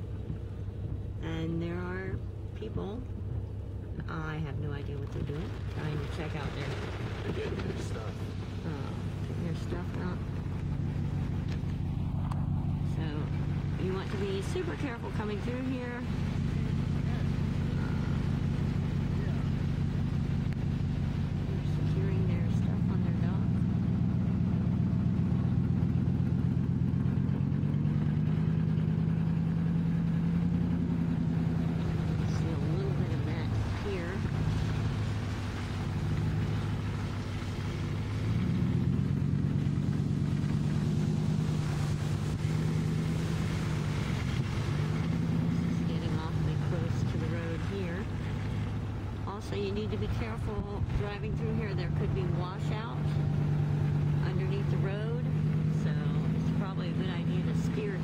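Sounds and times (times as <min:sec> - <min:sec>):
car engine from inside cabin: 0:00.0 - 0:58.0.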